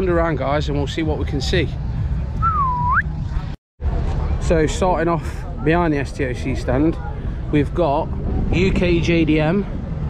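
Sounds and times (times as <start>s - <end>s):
low outdoor rumble: 0.0s - 10.0s
whistled rising note: 2.4s - 3.2s.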